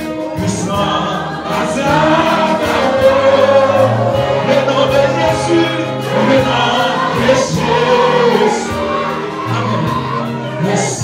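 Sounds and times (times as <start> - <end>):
group of voices singing: 0.0 - 11.0
instrumental accompaniment: 0.0 - 11.0.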